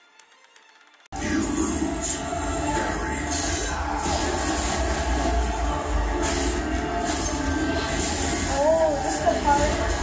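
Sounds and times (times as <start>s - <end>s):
drama soundtrack music: 0.0s - 10.0s.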